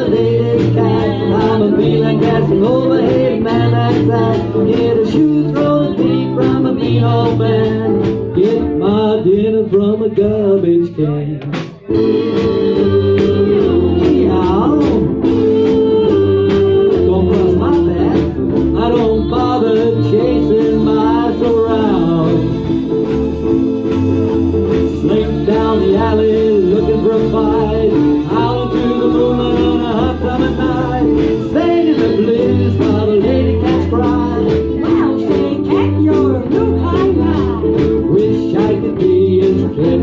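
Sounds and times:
strummed ukuleles: 0.0 - 8.9, 11.5 - 40.0
sliding lead melody: 0.0 - 10.8, 11.7 - 40.0
drum kit beat: 0.0 - 40.0
walking bass line: 0.0 - 40.0.

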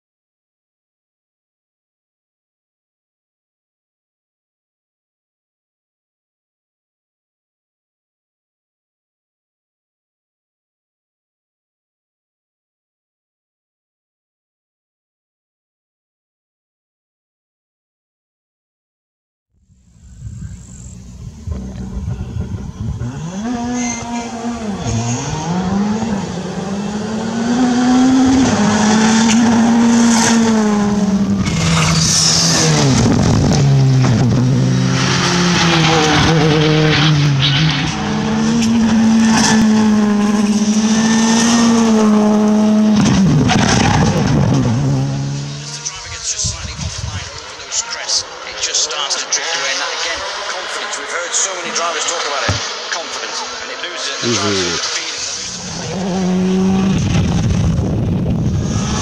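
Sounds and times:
rally car engines revving: 20.0 - 59.0.

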